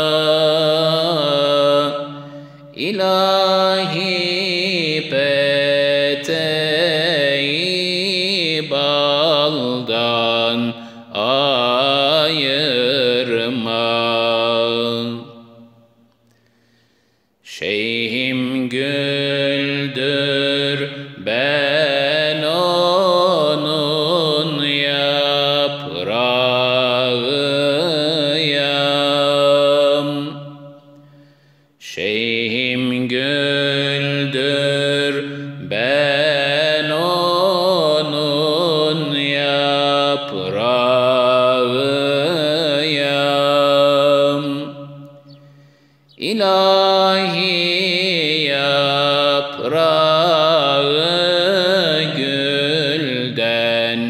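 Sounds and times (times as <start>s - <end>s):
solo voice singing unaccompanied: 0.0s - 15.4s, 17.5s - 31.0s, 31.8s - 45.4s, 46.1s - 54.0s.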